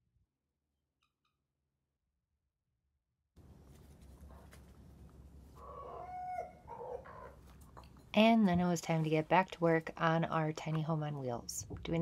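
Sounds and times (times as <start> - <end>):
chickens calling: 5.5 - 7.8.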